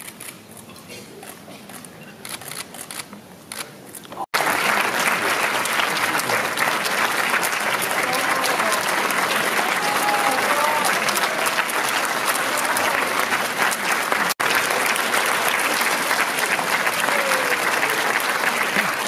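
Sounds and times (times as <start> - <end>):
audience applauding: 4.3 - 19.0.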